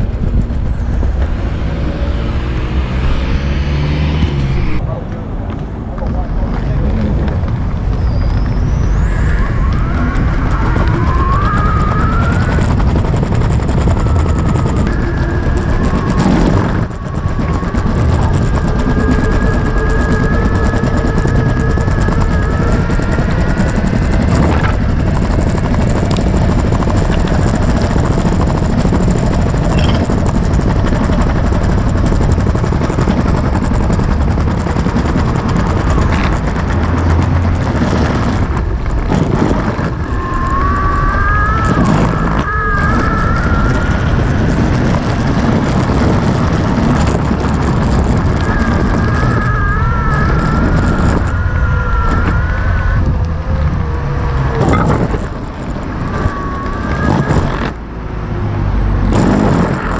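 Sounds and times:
electric motor whine: 0.0s - 4.8s, 7.4s - 59.9s
skateboard wheels rumbling on pavement: 0.0s - 59.9s.

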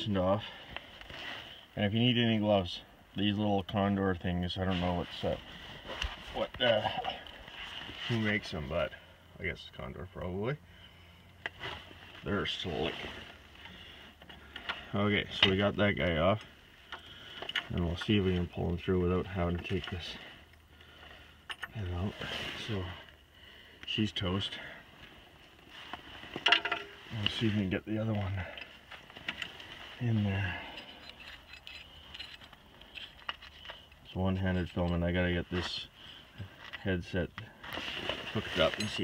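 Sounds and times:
metallic clinks: 30.6s - 34.0s.

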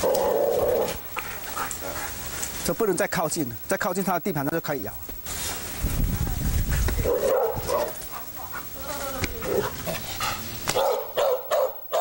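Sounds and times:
dog barking aggressively: 7.0s - 8.7s, 9.5s - 12.0s.

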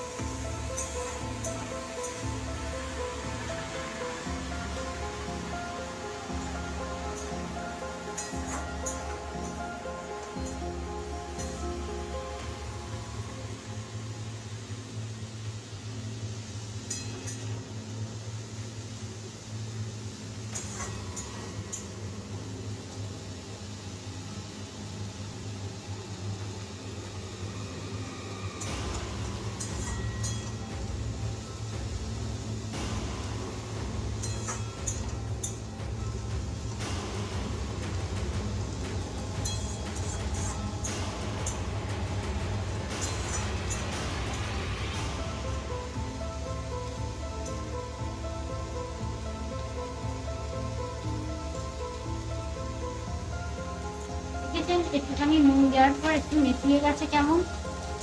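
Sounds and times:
background music: 0.0s - 58.0s.

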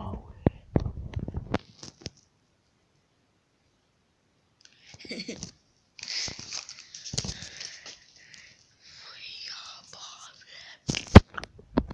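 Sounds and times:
boy whispering: 0.0s - 0.5s, 8.8s - 11.0s.

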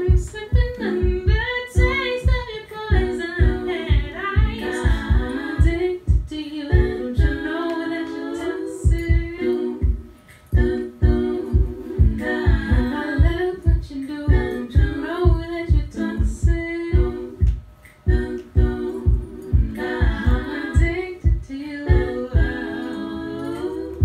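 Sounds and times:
steady low pulse: 0.0s - 7.5s, 8.8s - 22.8s
layered vocal harmonies: 0.0s - 24.0s
woman singing a cappella: 0.0s - 24.0s.

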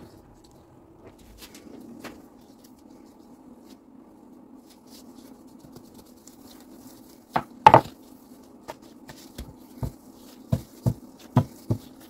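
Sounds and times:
faint low hum: 0.0s - 12.0s
rolling pin knocking on board: 7.4s - 7.9s, 9.4s - 11.9s.

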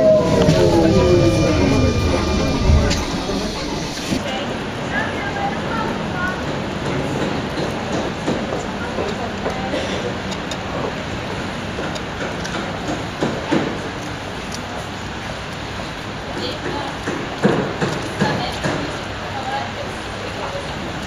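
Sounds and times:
background voices: 0.0s - 4.6s
train running on rails: 0.0s - 21.0s.

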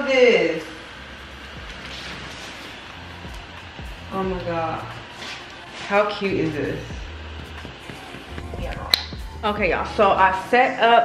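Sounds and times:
electric blower fan humming: 0.0s - 11.0s.

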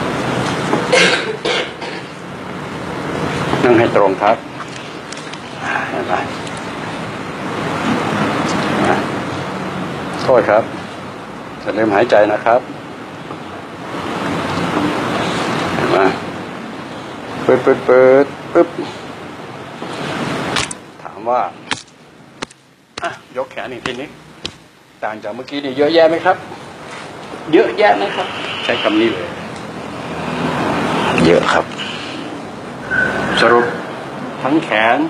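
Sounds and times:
man speaking: 3.6s - 4.4s, 23.0s - 24.2s, 27.4s - 29.5s, 31.0s - 32.2s, 33.2s - 35.0s
vehicle rumbling hiss: 5.5s - 6.2s, 27.9s - 29.4s, 30.0s - 34.1s.

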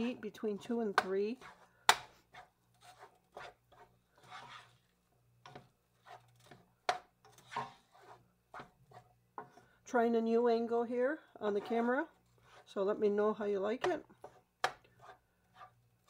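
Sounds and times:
spoon scraping a skillet: 0.0s - 9.8s, 11.4s - 13.0s, 13.8s - 16.0s.

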